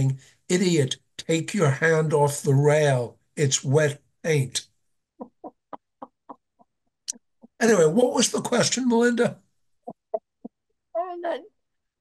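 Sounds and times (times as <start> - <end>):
woman laughing: 5.2 - 6.5.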